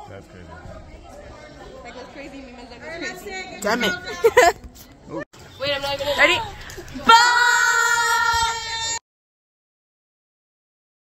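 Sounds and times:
girls screaming: 7.0 - 9.0.

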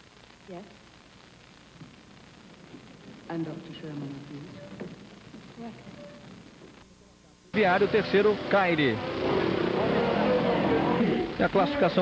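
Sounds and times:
racing motorcycle engines droning: 7.6 - 12.0.

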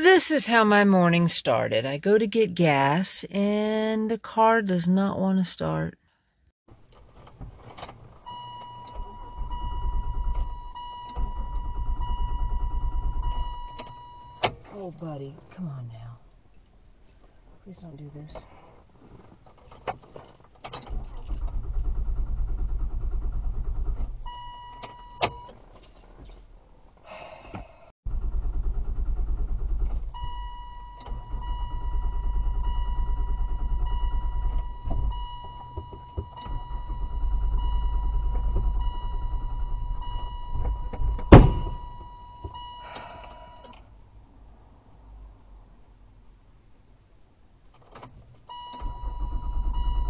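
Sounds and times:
dashboard warning chime beeping: 8.3 - 14.4, 30.2 - 43.7, 48.5 - 50.0
starter cranking engine: 20.9 - 24.5, 28.1 - 35.8, 48.8 - 50.0.

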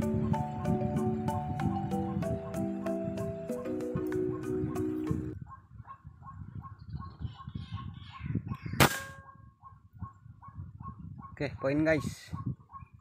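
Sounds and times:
rifle shot: 8.8 - 9.2.

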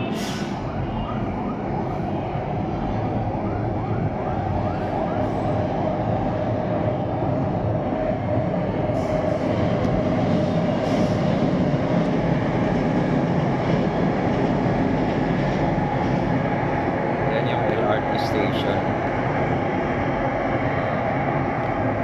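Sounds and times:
city traffic: 0.0 - 22.0
light-rail train running: 0.0 - 22.0.

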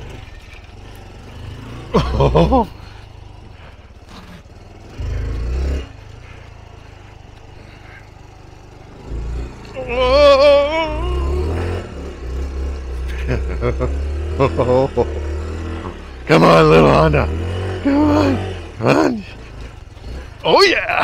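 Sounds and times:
motorcycle engine running: 0.0 - 21.0
person whooping: 9.7 - 11.7.

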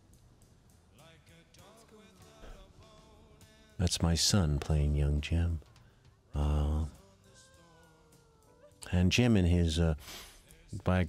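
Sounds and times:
commentary speech: 3.8 - 5.6, 6.4 - 7.0, 8.8 - 10.0, 10.8 - 11.0.

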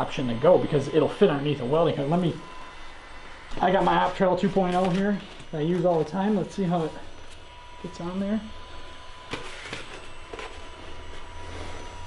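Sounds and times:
battery-powered blower humming: 0.0 - 12.0.

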